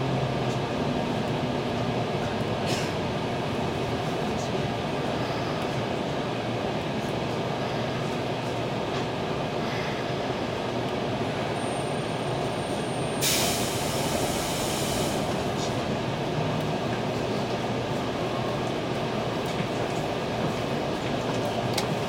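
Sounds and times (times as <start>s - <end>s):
train carriage rumble: 0.0s - 22.0s
compressed air hiss: 13.2s - 15.3s.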